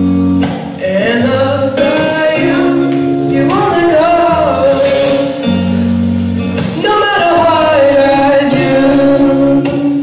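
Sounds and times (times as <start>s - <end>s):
man singing into a microphone: 0.7s - 5.7s, 6.6s - 10.0s.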